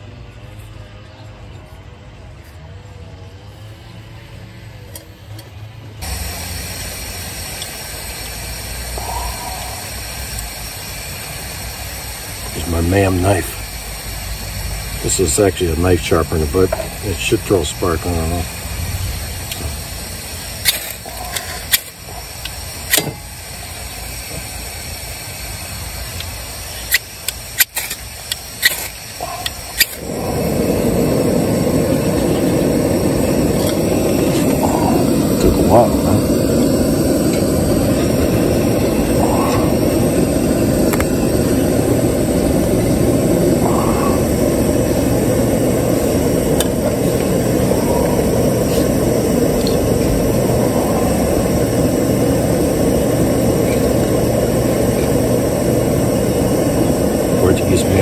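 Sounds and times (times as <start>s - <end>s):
fire burning: 6.0s - 58.0s.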